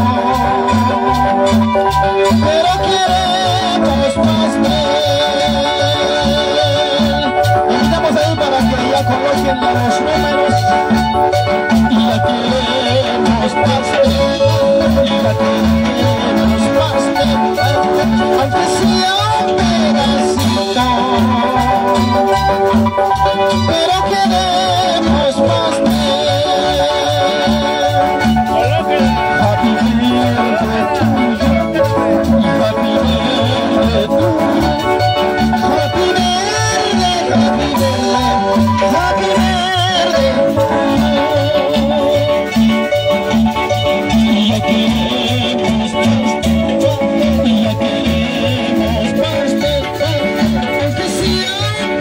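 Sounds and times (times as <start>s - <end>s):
mariachi-style guitar music: 0.0s - 52.0s.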